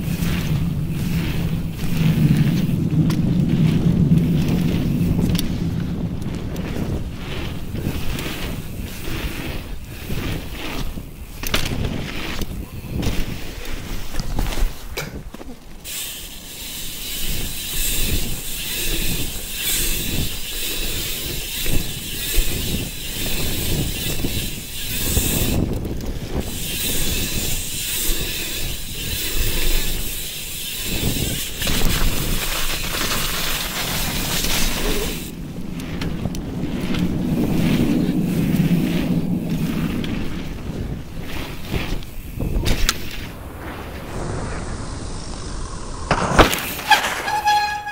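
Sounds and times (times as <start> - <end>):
wind buffeting microphone: 0.0 - 15.5, 16.7 - 46.5
bicycle tyres on slush: 0.0 - 47.9.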